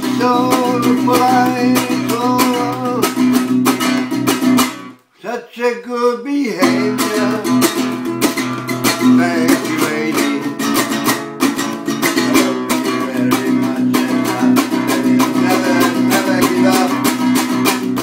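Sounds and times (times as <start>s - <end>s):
acoustic guitar strummed fast: 0.0s - 5.0s, 6.6s - 18.0s.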